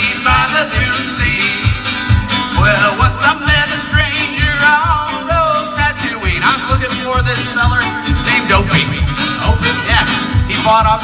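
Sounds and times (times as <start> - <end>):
guitar playing: 0.0 - 11.0
steady low beat: 0.7 - 11.0
fiddle playing: 2.6 - 11.0.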